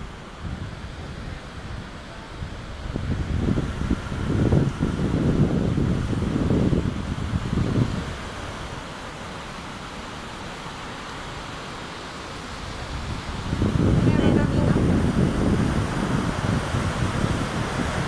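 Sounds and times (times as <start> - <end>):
wind buffeting microphone: 0.0 - 9.4, 11.4 - 18.0
steady background hiss: 0.0 - 18.0.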